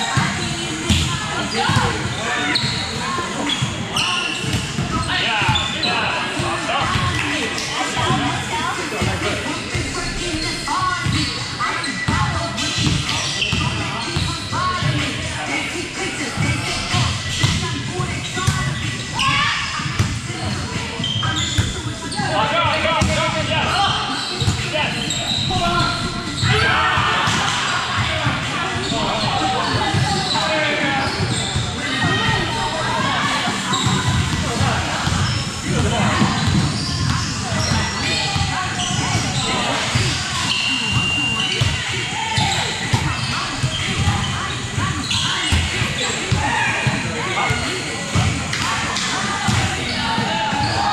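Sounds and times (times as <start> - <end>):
players chatting and calling: 0.0 - 50.9.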